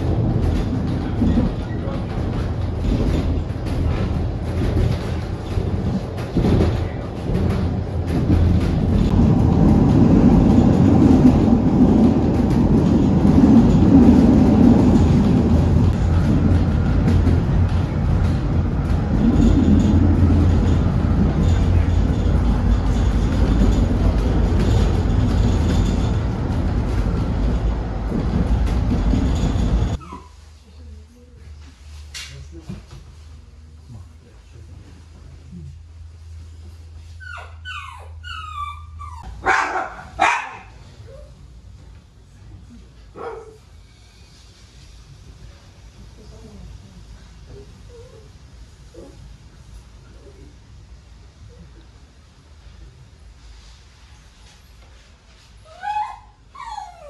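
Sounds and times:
train rumbling on rails: 0.0 - 57.0.

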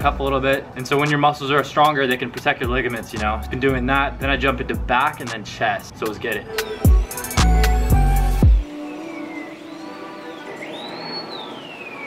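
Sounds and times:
music with heavy bass beat: 2.6 - 5.4, 6.4 - 8.7
fire siren wailing: 6.5 - 12.0.

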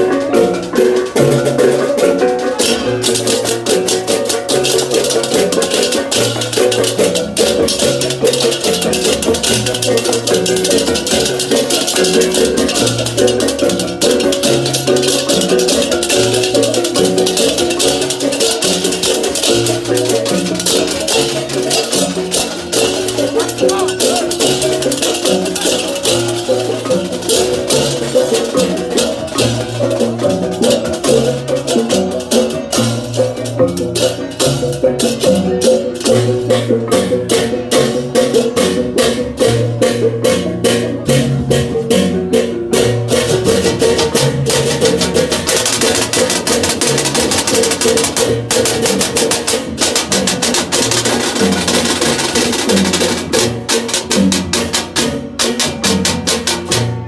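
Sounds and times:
hand cymbals clashing: 0.0 - 56.9.

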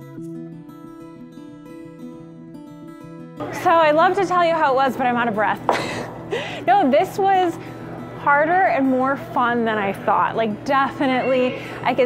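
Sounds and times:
plucked acoustic guitar music: 0.0 - 11.6
woman speaking: 3.5 - 5.7, 6.7 - 7.6, 8.2 - 12.0.

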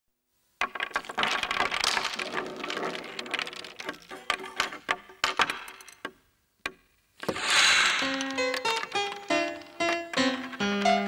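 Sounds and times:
small hard pieces clattering: 0.6 - 6.1.

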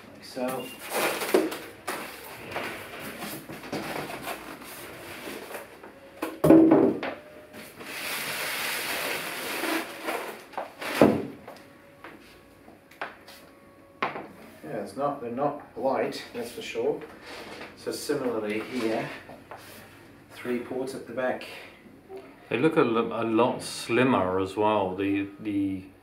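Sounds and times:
foam and plastic bag rustling: 0.8 - 5.9, 7.7 - 11.1.

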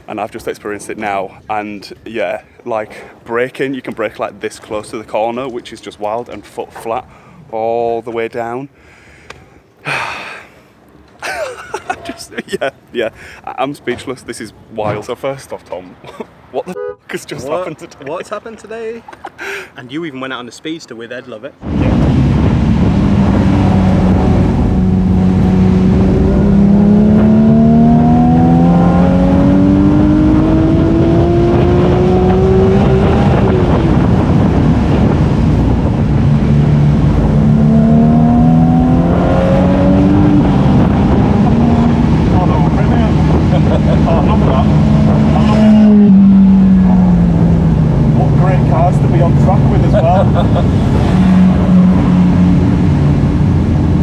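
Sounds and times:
car engine at full throttle: 21.6 - 54.0.

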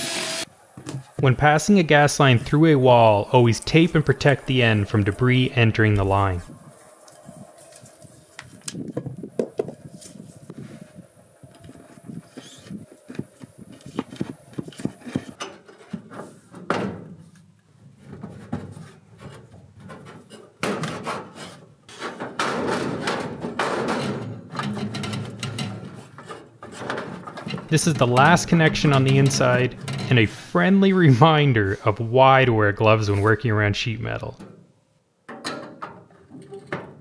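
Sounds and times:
pipe scraping and rustling: 3.4 - 22.3, 23.8 - 30.3, 32.8 - 33.5.

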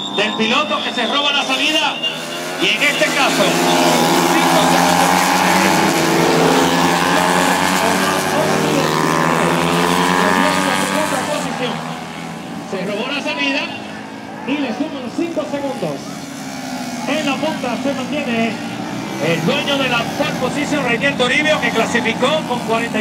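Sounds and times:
racing motorcycles revving high: 0.0 - 23.0
voices: 0.0 - 23.0.

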